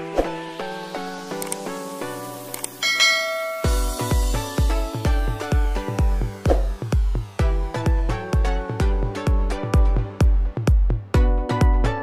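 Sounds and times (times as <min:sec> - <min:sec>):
background music: 0:00.0 - 0:12.0
bright bell chime: 0:02.8 - 0:04.5
electronic dance beat: 0:03.0 - 0:11.3.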